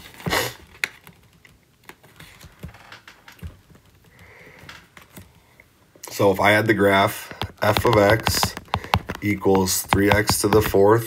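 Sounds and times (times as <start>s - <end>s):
stylus tapping on glass screen: 7.3s - 10.9s.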